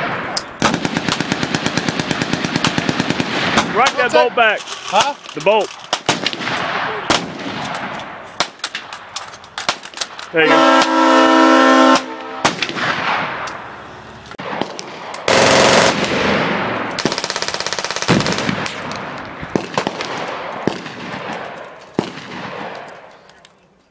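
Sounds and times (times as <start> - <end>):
automatic gunfire: 0.0 - 4.1, 5.9 - 10.2, 11.9 - 13.4, 14.4 - 23.0
single sharp gunshot cracks: 11.9 - 13.6, 18.1 - 22.9.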